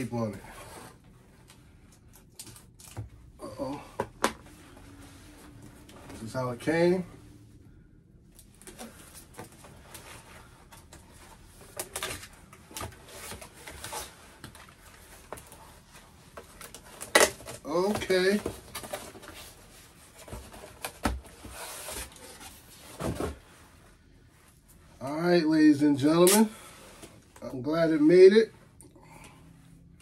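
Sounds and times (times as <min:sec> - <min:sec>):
cardboard and plastic rustling: 0:08.4 - 0:23.7.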